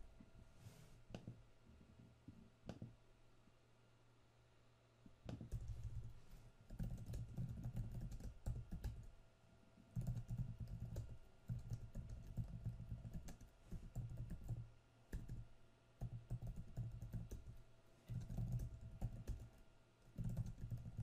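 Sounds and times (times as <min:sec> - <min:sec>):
typing on computer keyboard: 0:05.3 - 0:06.1, 0:06.7 - 0:09.1, 0:10.0 - 0:15.4, 0:16.0 - 0:21.0.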